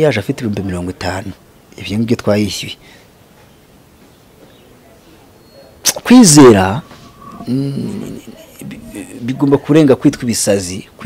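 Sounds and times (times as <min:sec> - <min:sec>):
faint room hiss: 0:00.0 - 0:11.0
man speaking: 0:05.8 - 0:11.0.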